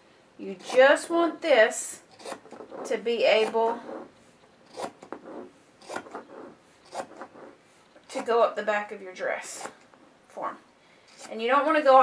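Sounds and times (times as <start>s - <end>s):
scissors snipping fabric: 0.6s - 1.0s, 2.1s - 3.8s, 4.7s - 5.2s, 5.8s - 7.3s, 9.5s - 9.8s.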